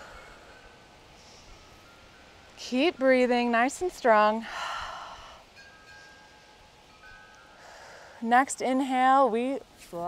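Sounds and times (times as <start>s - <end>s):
breathy hiss: 0.0s - 2.5s, 4.4s - 8.4s.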